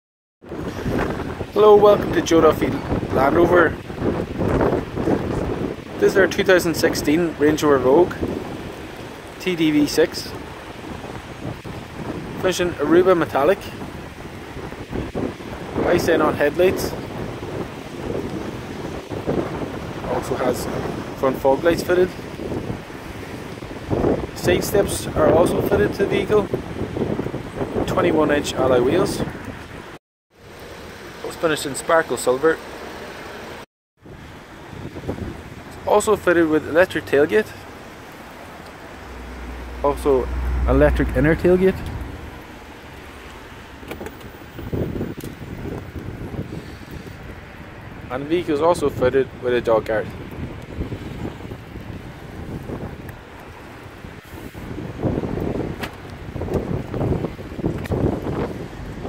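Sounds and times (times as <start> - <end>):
wind buffeting microphone: 0.4 - 30.0, 34.0 - 59.0.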